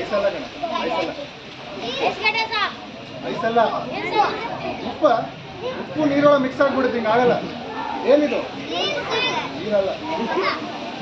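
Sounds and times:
children's voices in crowd: 0:00.0 - 0:11.0.

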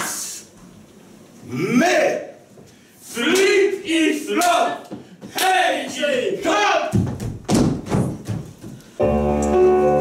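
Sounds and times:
heavy thumps on a stage: 0:06.9 - 0:08.8.

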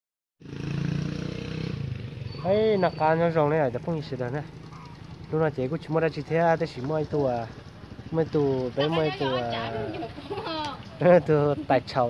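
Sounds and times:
engine running: 0:00.5 - 0:12.0.

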